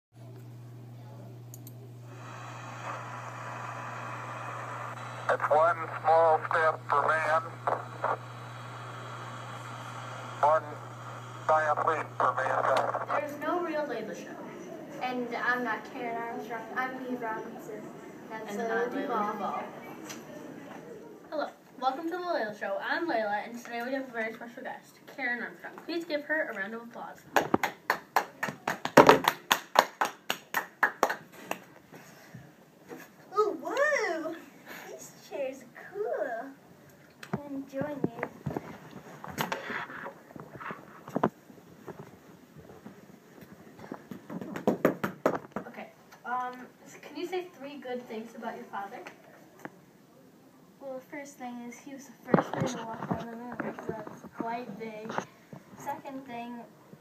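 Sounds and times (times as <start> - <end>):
steady low hum: 0.2 - 21.2
radio static hiss: 1.8 - 14.4
hands clapping: 27.3 - 31.7, 44.1 - 45.7.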